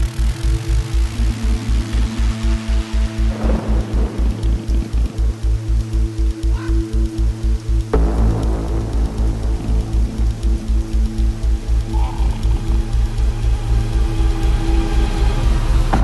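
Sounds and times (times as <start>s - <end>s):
electronic music with pulsing bass: 0.0s - 16.0s.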